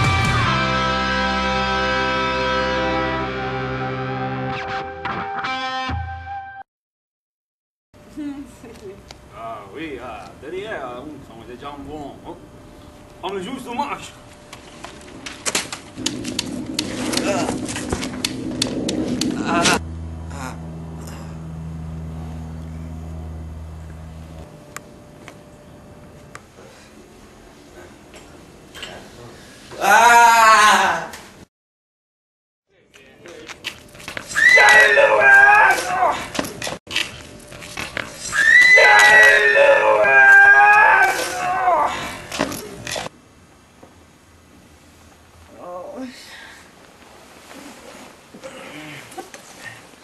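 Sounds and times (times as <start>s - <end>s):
steady low hum: 8.0s - 29.7s
person crying out strained: 19.4s - 21.3s, 29.8s - 31.2s, 38.4s - 42.3s.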